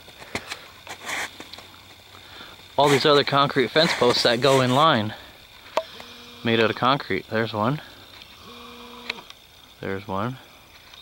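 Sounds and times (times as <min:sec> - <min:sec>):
background hiss: 0:00.0 - 0:11.0.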